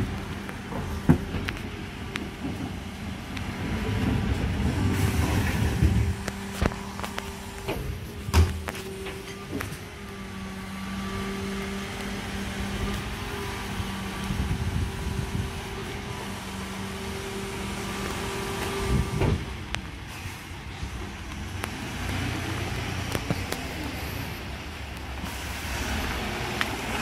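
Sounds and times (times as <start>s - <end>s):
truck engine idling: 0.0s - 27.0s.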